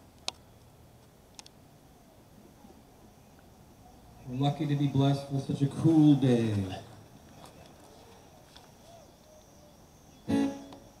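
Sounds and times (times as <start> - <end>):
loud guitar chord: 10.3 - 10.8.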